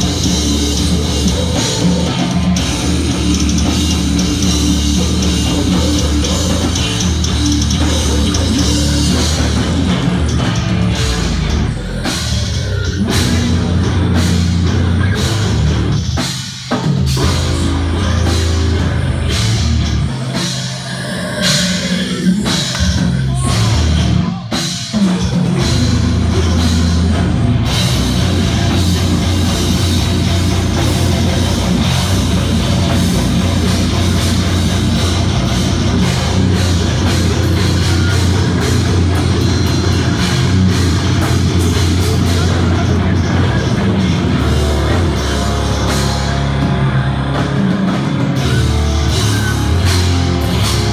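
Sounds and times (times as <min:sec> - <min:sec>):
death metal band playing: 0:00.0 - 0:50.9
distorted guitars chugging: 0:00.0 - 0:50.9
drum kit: 0:00.0 - 0:50.9.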